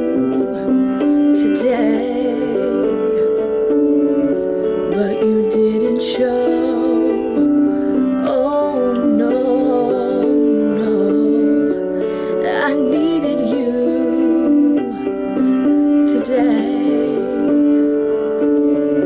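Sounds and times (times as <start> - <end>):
woman singing pop ballad: 0.0 - 3.8, 4.9 - 15.1, 16.0 - 18.0.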